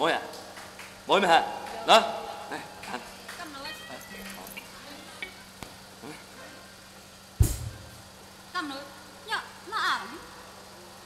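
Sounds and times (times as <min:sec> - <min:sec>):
low hum: 0:00.0 - 0:06.2
microphone bump thump: 0:07.4 - 0:08.0.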